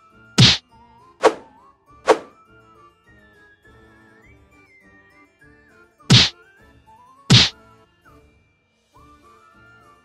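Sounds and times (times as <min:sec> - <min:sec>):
loud whacks: 0:00.4 - 0:00.6, 0:01.2 - 0:01.5, 0:02.1 - 0:02.3, 0:06.1 - 0:06.3, 0:07.3 - 0:07.5.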